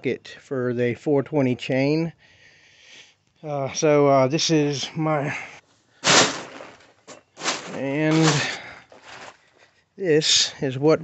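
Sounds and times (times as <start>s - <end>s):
plastic tarp rustling: 6.0s - 9.6s.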